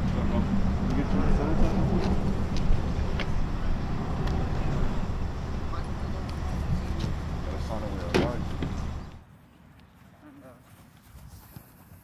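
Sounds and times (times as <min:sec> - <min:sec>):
low outdoor rumble: 0:00.0 - 0:09.2.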